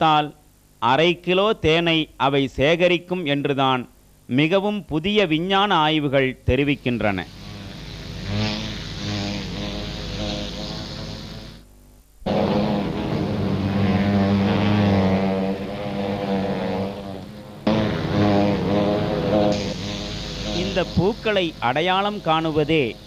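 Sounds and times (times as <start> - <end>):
bee wings buzzing: 6.9 - 23.0.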